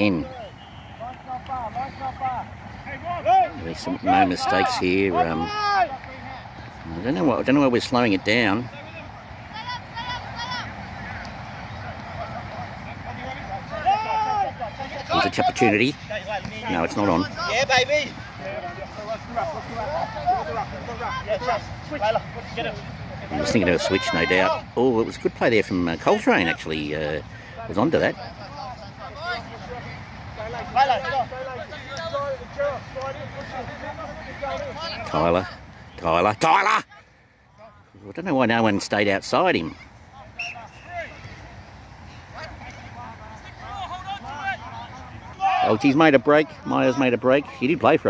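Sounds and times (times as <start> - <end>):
drawn-out shout: 0.0 - 6.5, 8.8 - 11.2, 13.3 - 22.6, 23.2 - 24.7, 43.6 - 45.9
outdoor background noise: 0.0 - 48.0
players calling out: 0.0 - 48.0.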